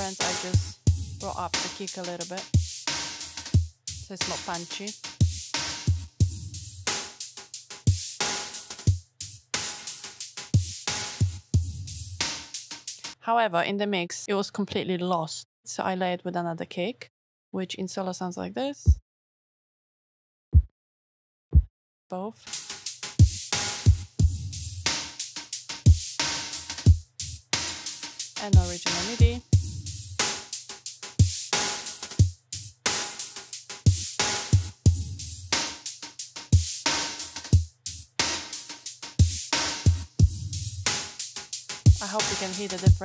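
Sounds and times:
deep layered kick drum: 0:00.0 - 0:01.7, 0:03.5 - 0:04.6, 0:05.2 - 0:06.9, 0:10.6 - 0:12.2, 0:23.2 - 0:25.0, 0:25.9 - 0:26.2, 0:26.8 - 0:27.4, 0:28.4 - 0:30.3, 0:33.9 - 0:35.6, 0:37.5 - 0:38.0, 0:39.2 - 0:41.0, 0:41.9 - 0:43.0
electronic drum loop: 0:00.0 - 0:13.1, 0:22.5 - 0:43.0.

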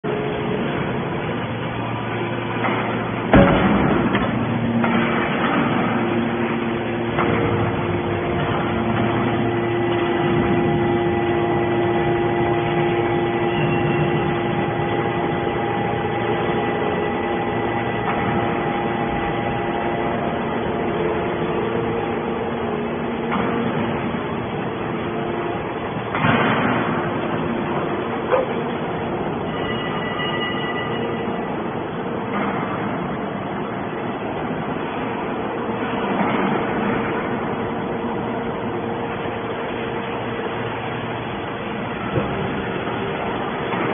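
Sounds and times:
baler machine hum and whine: 0:00.0 - 0:43.9.

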